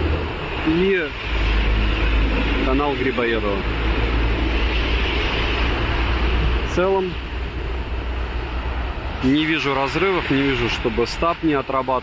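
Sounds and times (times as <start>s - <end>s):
street traffic rush: 0.0s - 12.0s.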